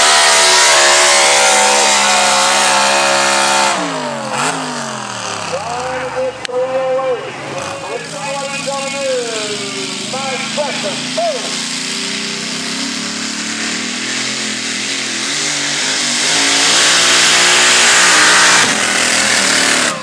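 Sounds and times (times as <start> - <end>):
truck engine under load: 0.0 - 20.0.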